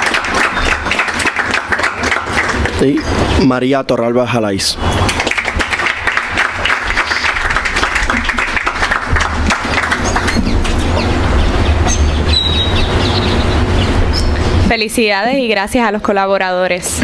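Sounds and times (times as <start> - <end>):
audience applauding: 0.0 - 3.1, 5.0 - 11.9.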